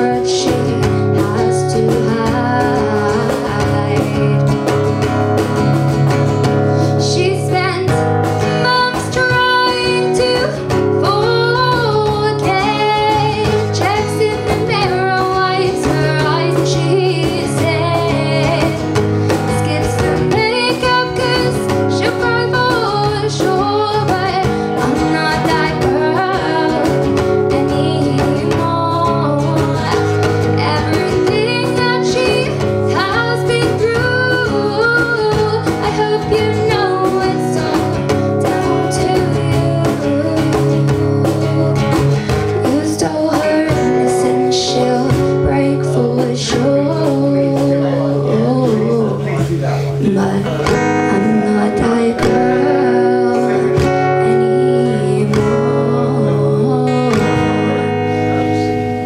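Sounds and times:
woman singing: 0.0s - 49.4s, 50.0s - 58.2s
acoustic guitar: 0.0s - 59.0s.

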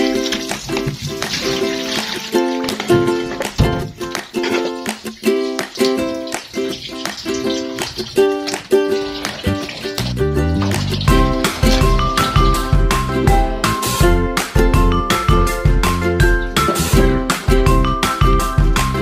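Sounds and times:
upbeat plucked melody: 0.0s - 19.0s.

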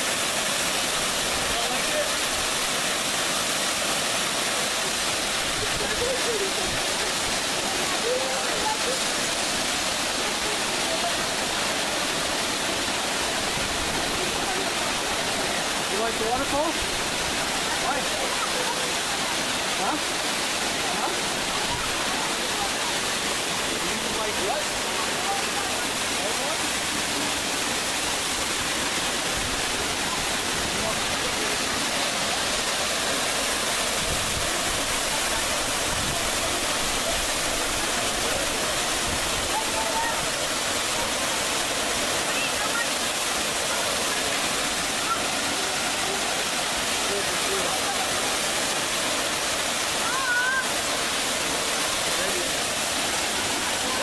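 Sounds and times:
waterfall cascading over rock: 0.0s - 54.0s.

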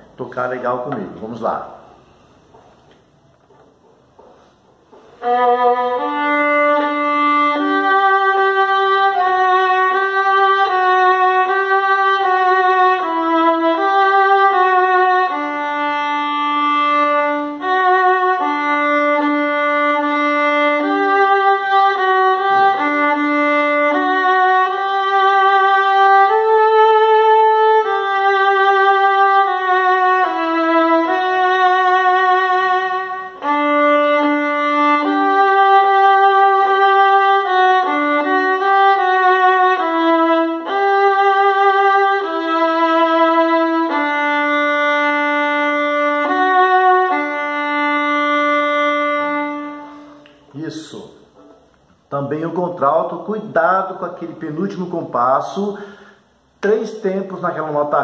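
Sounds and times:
solo violin melody: 4.9s - 50.5s.

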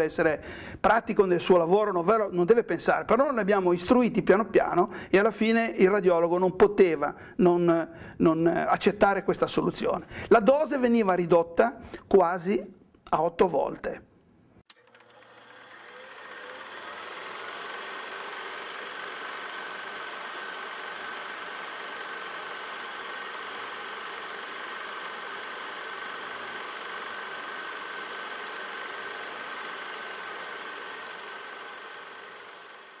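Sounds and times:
machine whining and clattering: 14.7s - 33.0s.

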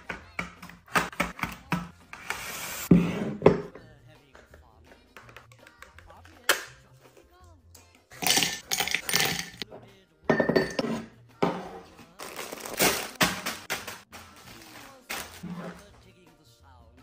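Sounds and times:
faint music: 0.0s - 17.0s
metal capsules clattering into canister: 8.2s - 9.6s.

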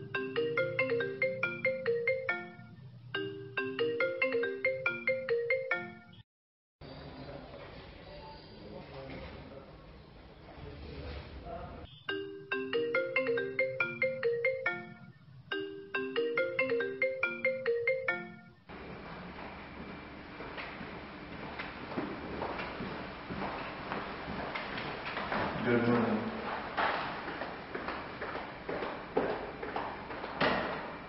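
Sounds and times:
marimba-like phone ringtone: 0.0s - 6.2s, 12.0s - 18.7s
faint room noise: 6.8s - 31.0s.

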